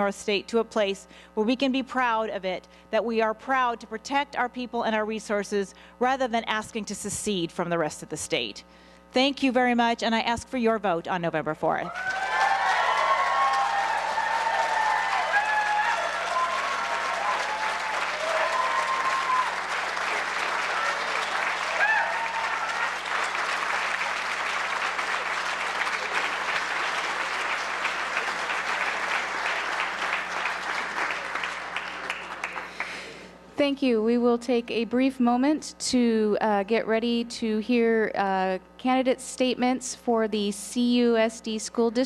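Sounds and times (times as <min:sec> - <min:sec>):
audience applauding: 0:12.0 - 0:33.0.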